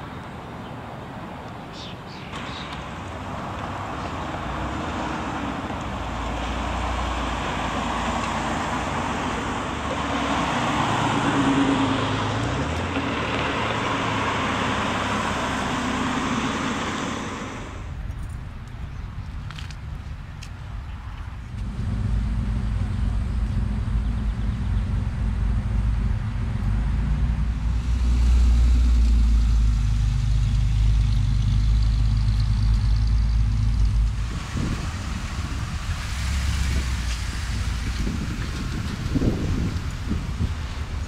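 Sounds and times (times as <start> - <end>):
road and wind noise: 0.0 - 41.0
car engine running: 21.5 - 36.0.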